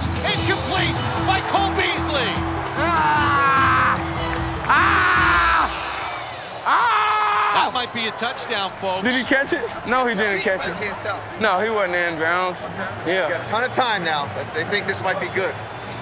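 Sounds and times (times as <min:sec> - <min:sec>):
background music: 0:00.0 - 0:07.0
man yelling: 0:02.8 - 0:04.0.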